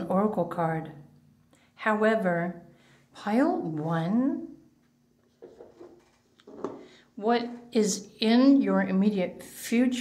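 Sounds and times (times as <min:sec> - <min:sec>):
faint handling sounds: 0:04.8 - 0:07.8.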